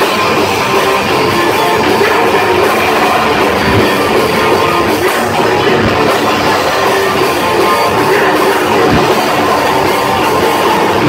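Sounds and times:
hardcore band playing live: 0:00.0 - 0:11.0.

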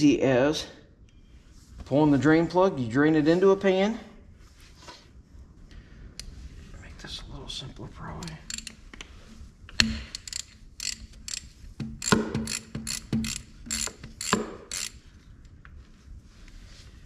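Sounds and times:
hand ratchet clicking: 0:08.2 - 0:08.8, 0:09.7 - 0:15.0.

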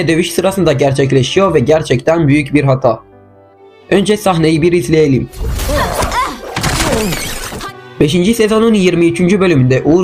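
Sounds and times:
crash with shattering: 0:05.4 - 0:07.7
character's voice: 0:05.5 - 0:07.7.

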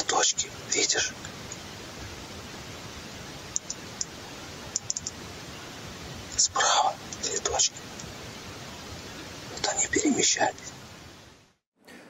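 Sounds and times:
man whispering: 0:00.0 - 0:01.3, 0:06.3 - 0:07.9, 0:09.5 - 0:10.8
steady hiss: 0:00.0 - 0:12.0
faint clicks: 0:00.7 - 0:01.7, 0:03.5 - 0:05.3, 0:07.1 - 0:07.3, 0:07.9 - 0:08.2.

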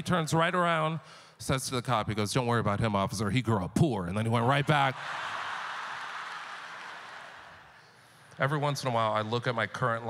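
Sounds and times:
audience laughing: 0:04.6 - 0:07.5
audience applauding: 0:04.7 - 0:07.9.

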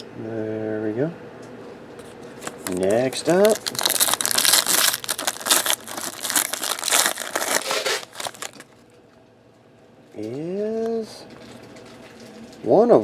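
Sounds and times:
foil wrapper tearing and crinkling: 0:02.4 - 0:08.7.

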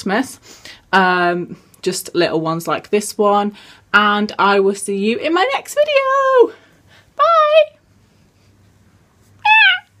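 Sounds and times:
high-pitched meow-like call: 0:09.4 - 0:10.0.

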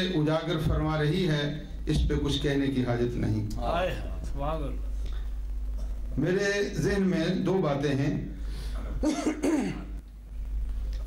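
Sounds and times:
low mains hum: 0:00.0 - 0:11.0
man clearing throat into microphone: 0:05.8 - 0:06.1, 0:08.9 - 0:10.0.

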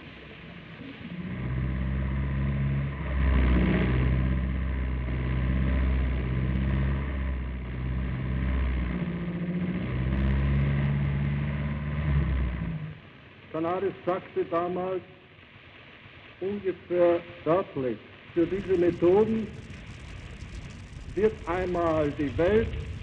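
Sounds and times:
car engine revving: 0:01.0 - 0:13.1, 0:18.4 - 0:23.0.

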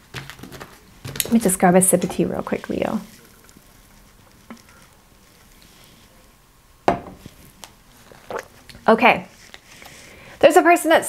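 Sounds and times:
tumbler knocking on table: 0:06.9 - 0:07.2.

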